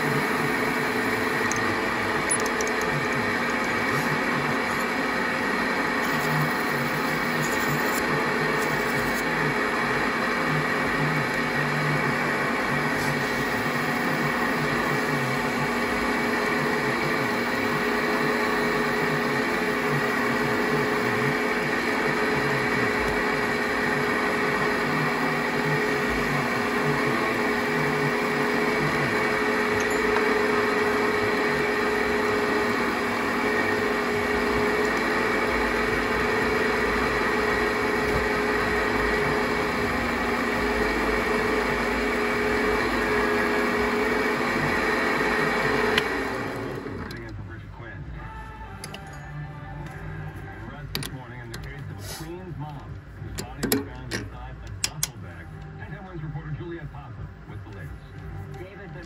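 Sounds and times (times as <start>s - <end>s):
lathe motor hum: 0.0s - 47.2s.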